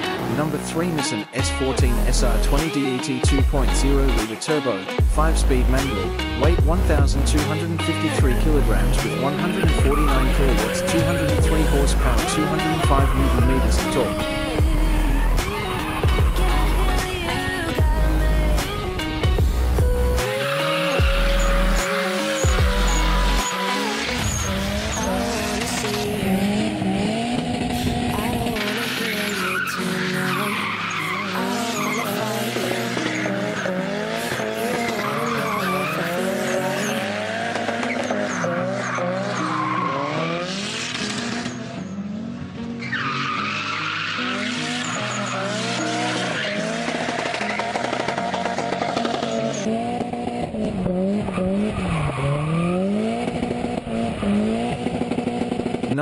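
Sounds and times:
car engine revving: 0.0s - 56.0s
tyres squealing and skidding: 7.8s - 17.8s, 20.2s - 56.0s.

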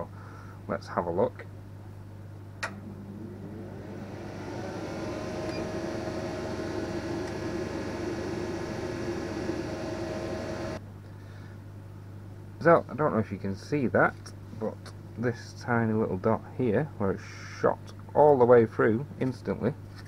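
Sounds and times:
click: 2.6s - 2.8s
electric motor humming: 2.7s - 10.8s.

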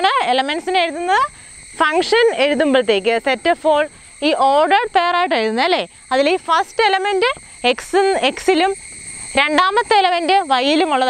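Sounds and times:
crickets chirping: 0.0s - 11.0s
woman talking: 0.0s - 11.0s.

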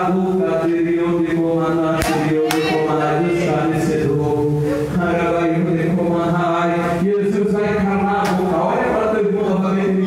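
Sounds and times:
man singing a long note: 0.0s - 10.0s.

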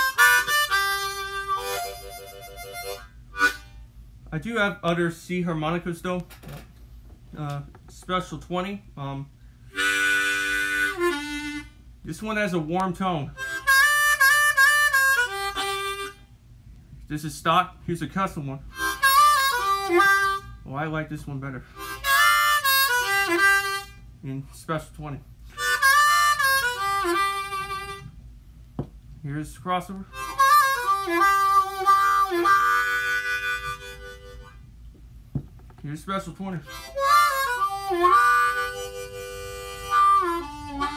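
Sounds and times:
harmonica playing: 0.0s - 3.9s, 9.7s - 12.2s, 13.4s - 16.3s, 18.7s - 24.1s, 25.5s - 28.2s, 30.0s - 34.8s, 36.0s - 40.9s.

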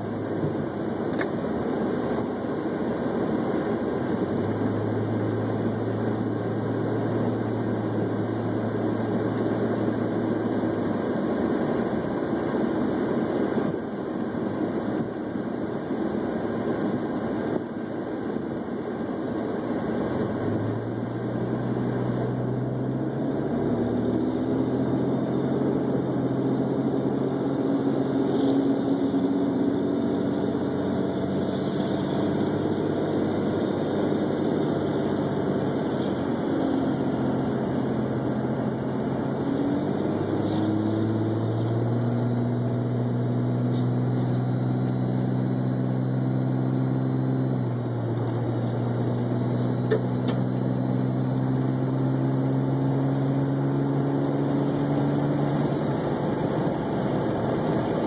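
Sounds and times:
car engine hum: 0.0s - 58.0s.

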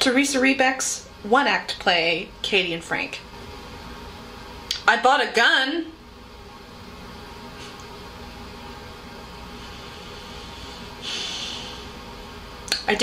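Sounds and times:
low room hum: 0.0s - 13.0s
woman breathing in: 9.5s - 12.0s.

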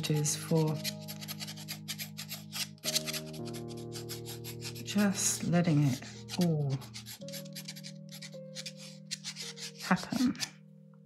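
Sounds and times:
pen scratching on paper: 0.0s - 10.5s
soft background music chords: 0.0s - 11.0s.

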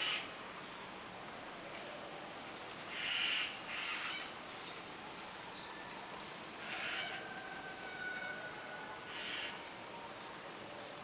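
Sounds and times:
outdoor background hiss: 0.0s - 11.0s
faint bird calls: 2.9s - 10.2s.

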